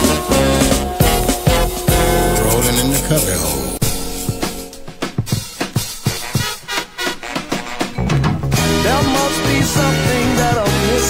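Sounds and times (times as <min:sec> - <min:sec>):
funk drum break: 0:00.0 - 0:11.0.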